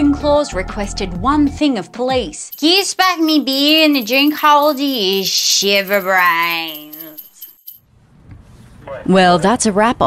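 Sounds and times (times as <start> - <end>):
small bells jingling: 2.3 - 7.8.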